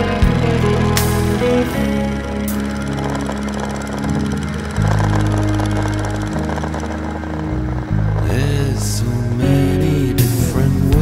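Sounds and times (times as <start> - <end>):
sustained low music chords: 0.0 - 11.0.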